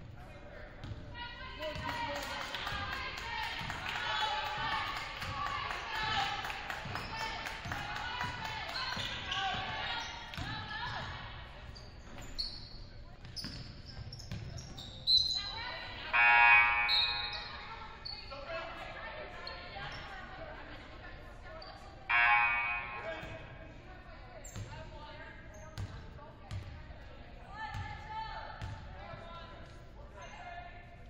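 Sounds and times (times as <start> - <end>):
voices calling out in a hall: 0.0 - 26.4
sneakers squealing on court: 11.7 - 18.4
basketball bouncing: 25.8 - 26.8, 27.7 - 27.9, 28.6 - 28.8.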